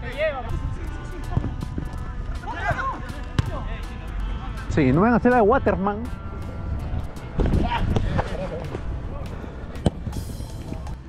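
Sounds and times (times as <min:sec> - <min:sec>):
footballers calling out: 0:00.0 - 0:06.6.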